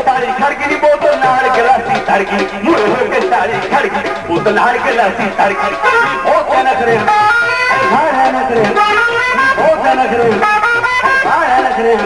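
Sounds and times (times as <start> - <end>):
live folk band music: 0.0 - 12.0
plucked-string melody: 0.0 - 12.0.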